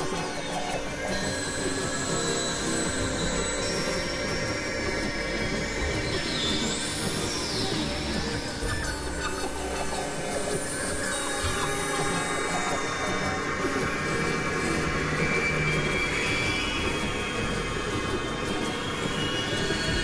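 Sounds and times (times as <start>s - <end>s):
experimental electronic drones: 0.0s - 20.0s
thin high whistle: 0.1s - 20.0s.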